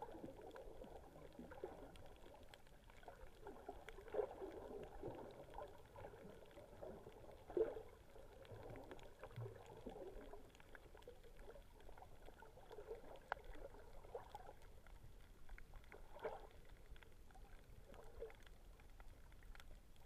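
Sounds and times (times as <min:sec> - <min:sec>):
muffled underwater water movement: 0:00.0 - 0:20.0
underwater swishes: 0:00.0 - 0:20.0.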